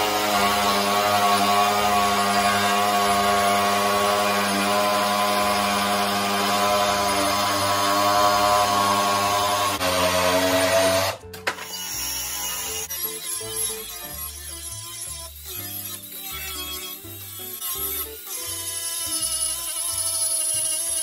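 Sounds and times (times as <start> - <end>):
angle grinder sanding wood: 0.0 - 21.0.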